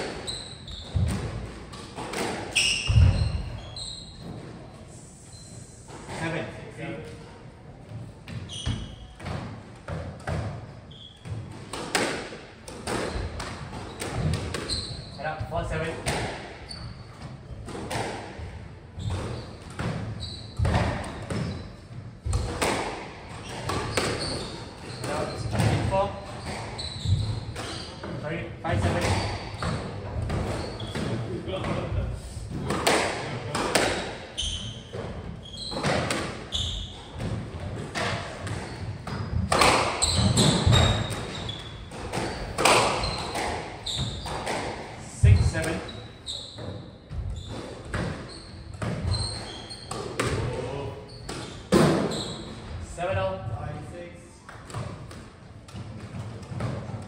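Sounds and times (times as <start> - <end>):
squash racket hits: 0.0 - 3.6, 8.2 - 14.9, 15.7 - 31.9, 32.5 - 45.9, 46.5 - 53.4.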